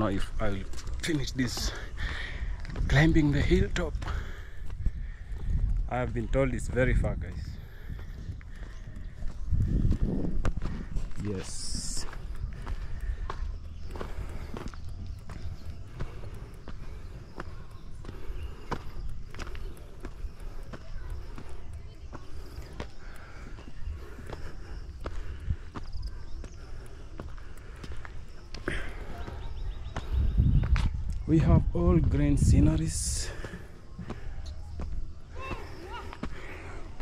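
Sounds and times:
footsteps crunching on gravel: 0.0 - 37.0.

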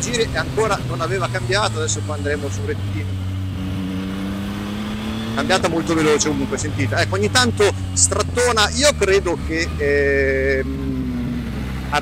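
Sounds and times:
motorcycle engine accelerating: 0.0 - 12.0.

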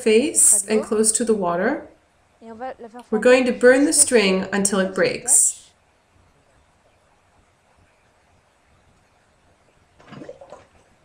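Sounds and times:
water sloshing in plastic basin: 10.0 - 11.0.

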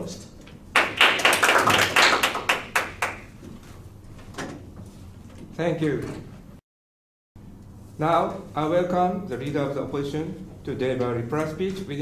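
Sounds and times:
people applauding: 0.7 - 3.3.

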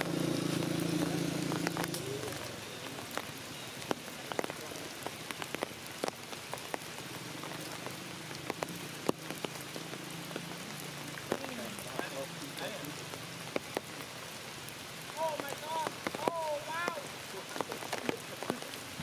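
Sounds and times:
rain pattering on leaves: 0.0 - 19.0.

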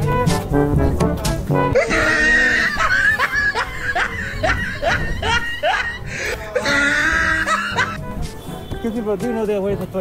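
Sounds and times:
squeaky snickering laughter: 1.8 - 8.0.

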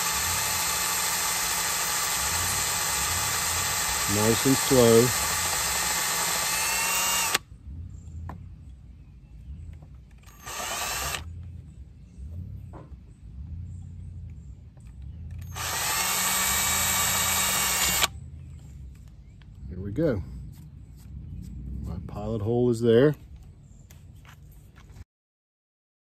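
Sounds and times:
cordless drill boring into metal: 0.0 - 7.4, 10.2 - 11.2, 15.4 - 18.1.

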